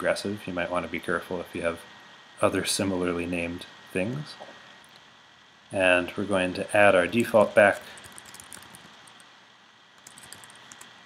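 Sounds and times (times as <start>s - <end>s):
soft keyboard keystrokes: 7.5s - 9.2s, 10.0s - 10.9s.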